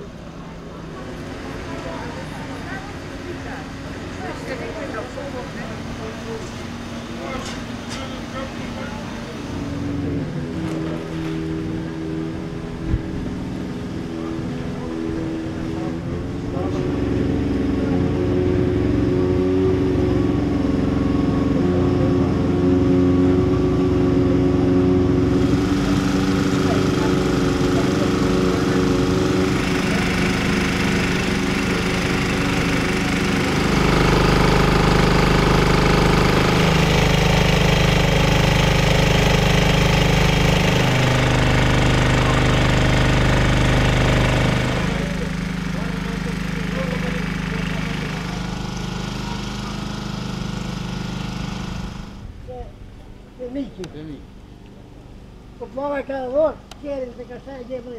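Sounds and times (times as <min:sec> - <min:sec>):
engine running steadily: 0:00.0 - 0:57.9.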